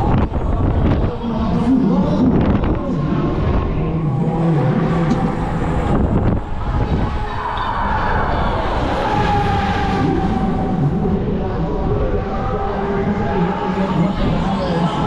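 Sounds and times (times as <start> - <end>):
fairground ride noise: 0.0 - 15.0
rush of wind: 0.0 - 15.0.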